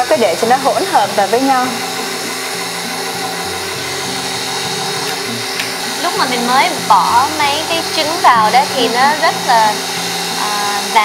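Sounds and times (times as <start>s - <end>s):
stand mixer running: 0.0s - 11.0s.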